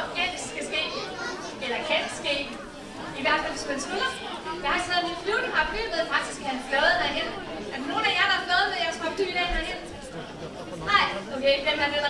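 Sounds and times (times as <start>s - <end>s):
woman talking: 0.0s - 1.0s, 1.6s - 2.5s, 3.2s - 9.9s, 10.9s - 12.0s
audience chatter: 0.0s - 12.0s.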